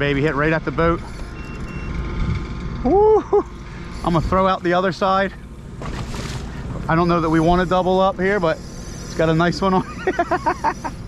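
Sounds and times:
boat noise: 0.0s - 11.0s
wind: 0.0s - 11.0s
short high-pitched beeps: 1.0s - 2.1s.

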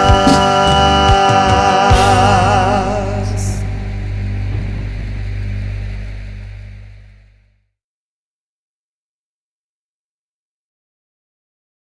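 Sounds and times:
brass band held chord: 0.0s - 7.4s
deep bass note: 0.0s - 7.6s.

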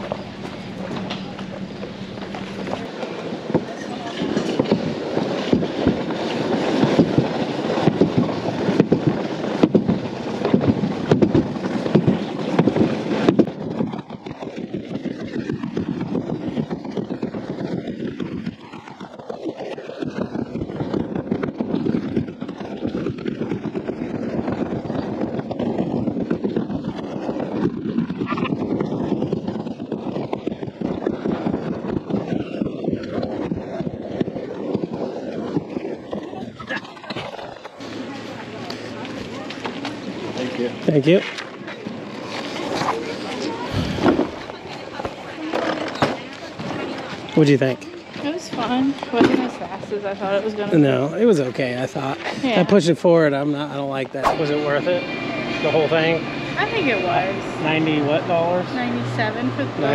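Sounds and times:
sled rolling and scraping: 0.0s - 59.9s.

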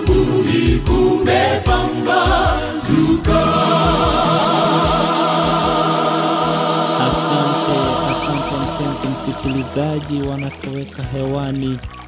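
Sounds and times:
voices singing gospel: 0.0s - 11.7s
instrumental backing: 7.0s - 12.0s.

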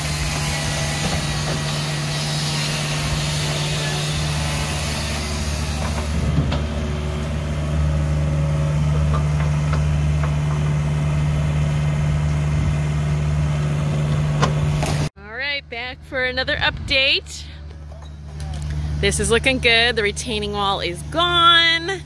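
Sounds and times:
excavator diesel engine running: 0.0s - 15.1s.

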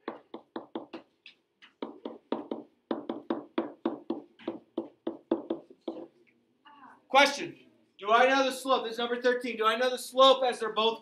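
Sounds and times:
pen tapping on whiteboard: 0.0s - 6.1s.

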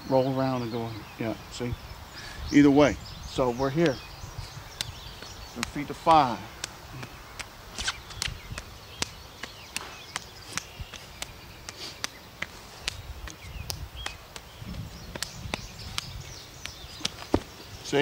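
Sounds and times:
hands and forearms clicking: 4.7s - 18.0s
feet shifting on grass: 5.2s - 18.0s.

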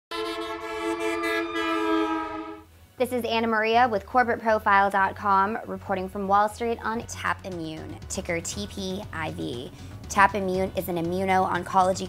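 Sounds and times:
held horn-like chord: 0.1s - 2.7s.

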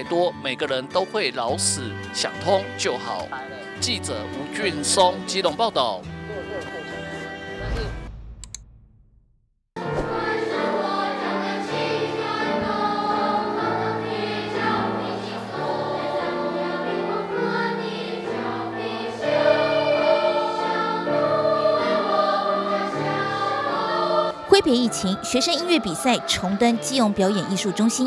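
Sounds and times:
children's choir singing: 9.8s - 28.0s.

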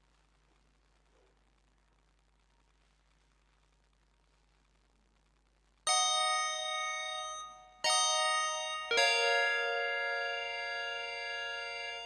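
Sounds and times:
bell-like electronic chords: 5.9s - 12.0s.

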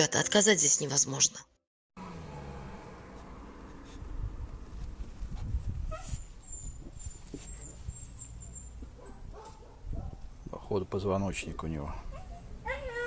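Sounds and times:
puppy crying: 12.0s - 13.0s.

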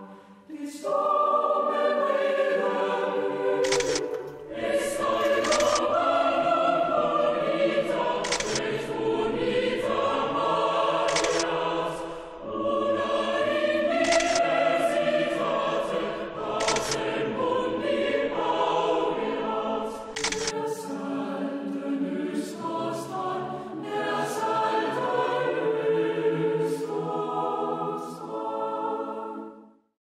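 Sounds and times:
choir singing sustained chords: 0.0s - 29.9s
sharp clicks: 3.6s - 4.5s, 5.1s - 5.9s, 8.2s - 8.8s, 11.1s - 11.6s, 14.0s - 14.5s, 16.6s - 17.1s, 20.1s - 20.6s.

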